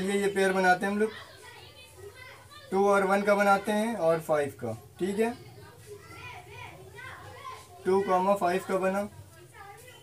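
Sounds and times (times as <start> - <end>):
faint children's voices: 0.0 - 10.0
teacher speaking: 0.0 - 10.0.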